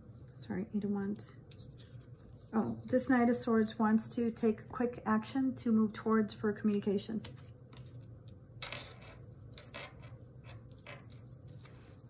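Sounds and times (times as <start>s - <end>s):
cards shuffled and tapped: 7.2s - 8.4s.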